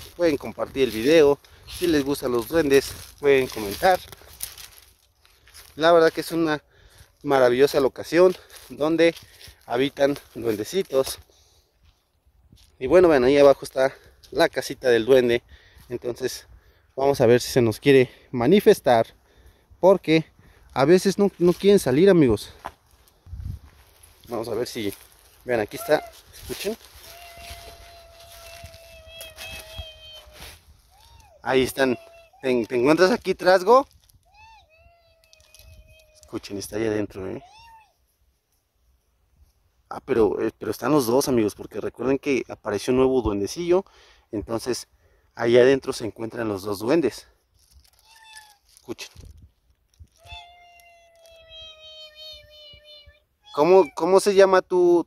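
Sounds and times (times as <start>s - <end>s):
high-pitched squeaky call: 25.7s - 33.0s, 37.2s - 38.1s, 47.9s - 48.7s, 50.2s - 54.1s.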